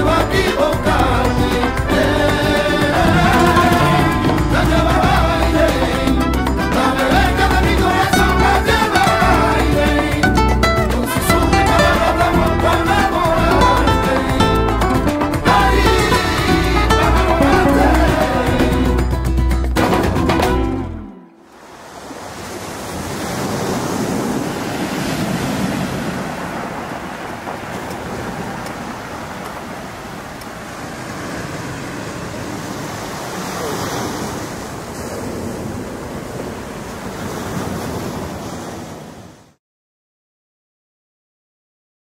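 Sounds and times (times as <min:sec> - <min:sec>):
flamenco guitar music: 0:00.0 - 0:21.4
waves on a pebbly shore: 0:21.4 - 0:39.6.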